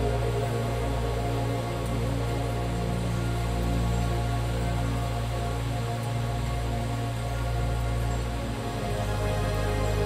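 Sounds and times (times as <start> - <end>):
ambient meditation music: 0.0 - 10.0.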